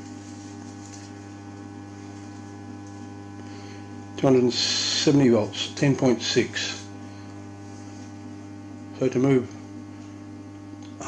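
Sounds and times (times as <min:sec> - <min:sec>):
buzzy transformer mains hum: 0:00.0 - 0:11.0.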